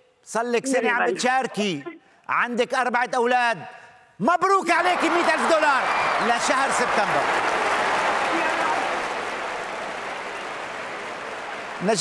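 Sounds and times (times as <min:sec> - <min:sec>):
man calling out: 0:00.6 - 0:02.1
applause: 0:04.7 - 0:12.0.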